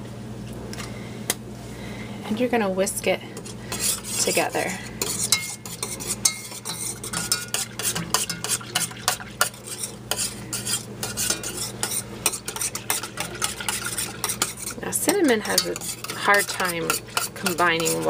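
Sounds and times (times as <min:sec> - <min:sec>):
whisk clinking against a pan: 0:03.7 - 0:18.0
liquid sloshing: 0:06.6 - 0:10.3, 0:11.1 - 0:18.0.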